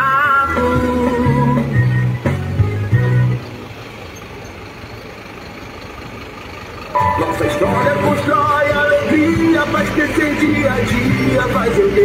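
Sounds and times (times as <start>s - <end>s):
truck engine driving past: 1.4s - 12.0s.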